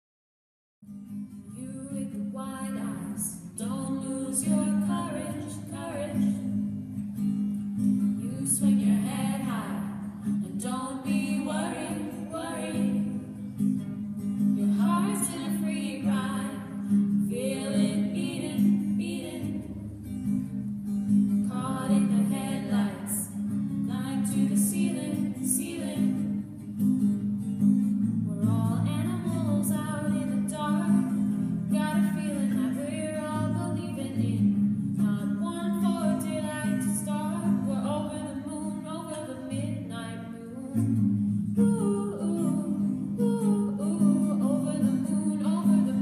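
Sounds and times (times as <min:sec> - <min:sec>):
strummed acoustic guitar: 0:00.8 - 0:46.0
woman singing: 0:01.5 - 0:06.6, 0:08.0 - 0:13.5, 0:14.6 - 0:19.8, 0:21.4 - 0:26.4, 0:28.3 - 0:46.0.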